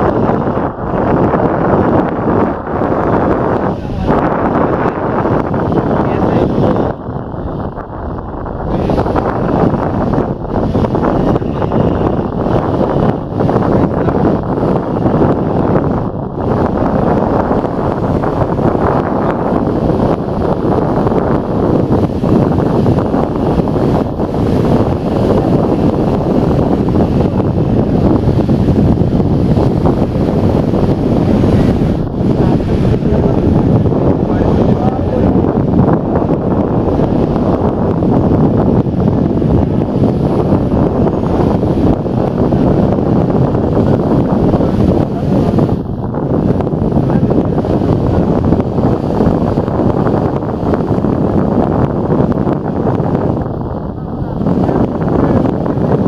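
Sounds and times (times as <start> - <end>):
strong wind buffeting microphone: 0.0 - 56.0.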